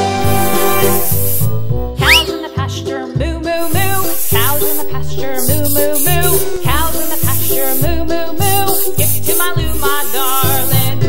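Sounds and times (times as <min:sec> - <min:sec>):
aerosol spray can hiss: 0:00.0 - 0:02.3, 0:03.6 - 0:11.0
cheerful children's music: 0:00.0 - 0:11.0.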